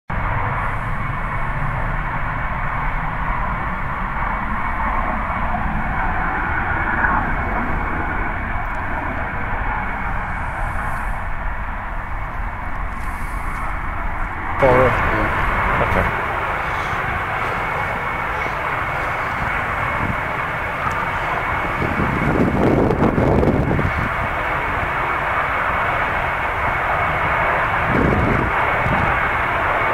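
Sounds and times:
gas flare burning: 0:00.1 - 0:29.9.

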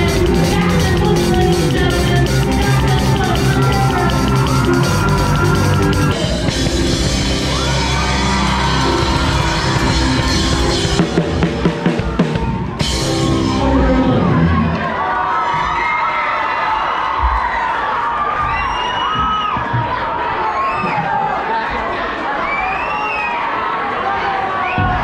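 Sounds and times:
rock band playing: 0:00.0 - 0:15.0
audience cheering and whooping: 0:02.3 - 0:25.0.

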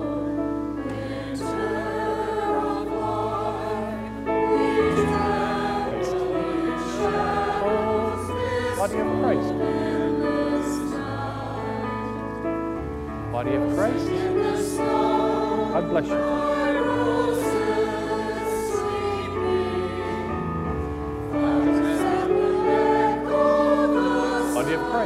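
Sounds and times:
choir singing a hymn: 0:00.0 - 0:25.0.

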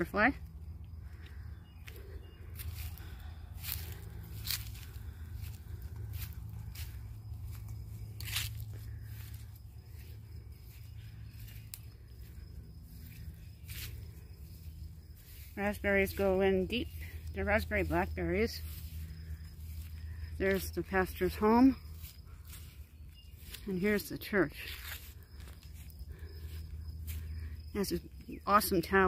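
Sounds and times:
footsteps through long grass: 0:00.5 - 0:29.0.

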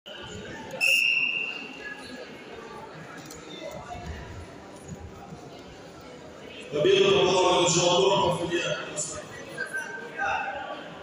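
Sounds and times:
voices chattering in a hall: 0:00.1 - 0:11.0
referee's whistle blast: 0:00.8 - 0:01.7.

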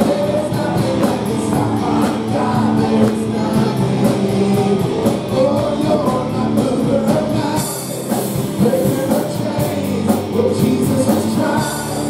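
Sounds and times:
drums keeping a steady beat: 0:00.0 - 0:12.0
electric guitar: 0:00.0 - 0:12.0
keyboard: 0:00.0 - 0:12.0
person singing: 0:00.0 - 0:12.0.

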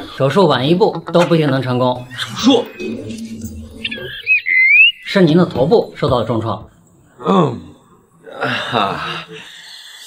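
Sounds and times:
comic warbling whistle effect: 0:02.1 - 0:05.2.

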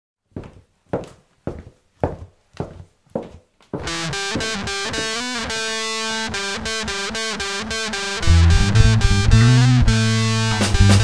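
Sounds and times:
percussive count-in knocks: 0:03.8 - 0:05.2
bass guitar: 0:03.8 - 0:11.0
distorted electric guitar: 0:03.8 - 0:11.0.

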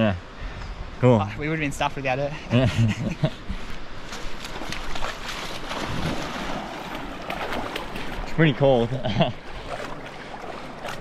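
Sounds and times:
water splashing around wading legs: 0:04.0 - 0:11.0.

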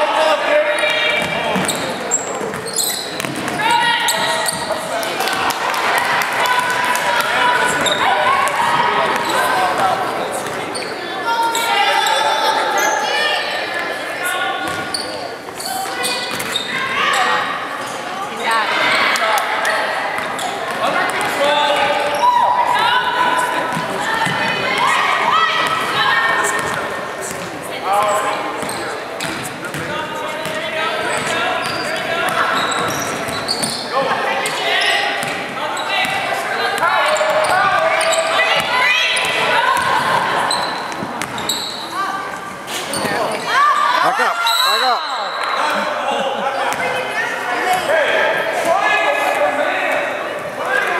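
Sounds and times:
voices calling out: 0:00.0 - 0:29.3.

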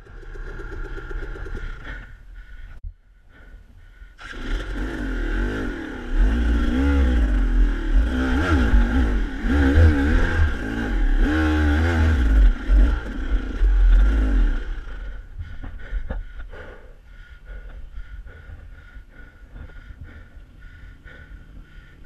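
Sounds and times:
dirt bike engine revving: 0:00.0 - 0:02.1, 0:04.2 - 0:15.3.

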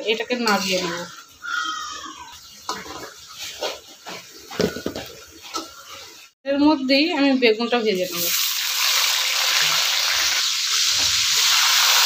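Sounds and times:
spatula scraping a wok: 0:02.7 - 0:06.3.

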